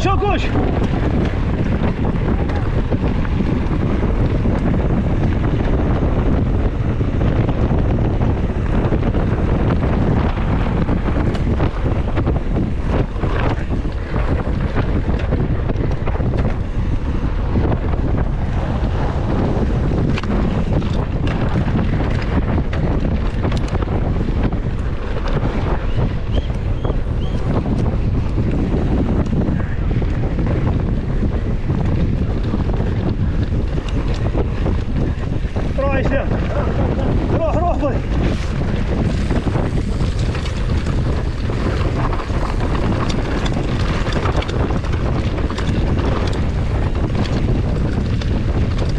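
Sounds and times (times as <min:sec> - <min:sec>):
person speaking: 0:00.0 - 0:00.8, 0:35.8 - 0:38.1
bike rumbling over dirt track: 0:00.0 - 0:48.9
wind buffeting microphone: 0:00.0 - 0:48.9.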